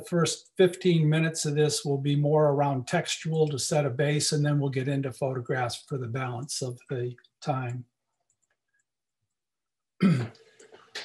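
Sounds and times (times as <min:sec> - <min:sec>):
man clearing his throat: 0:10.0 - 0:10.4.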